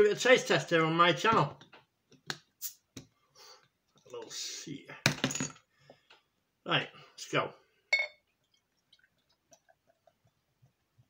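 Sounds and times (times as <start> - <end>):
bottle cap clattering on hard surface: 7.9 - 8.2.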